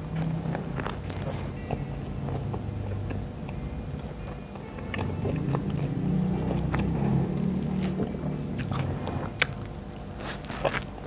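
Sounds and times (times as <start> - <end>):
close chewing of food: 0.0 - 11.0.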